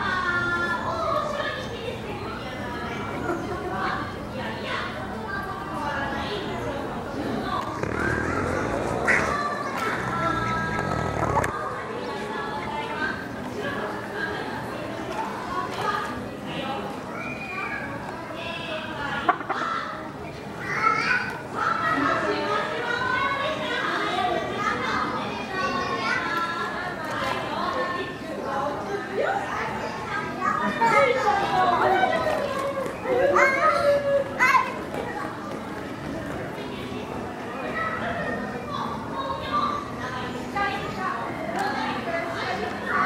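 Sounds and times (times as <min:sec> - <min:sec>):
children's voices: 0:00.0 - 0:43.0
people chattering: 0:00.0 - 0:43.0.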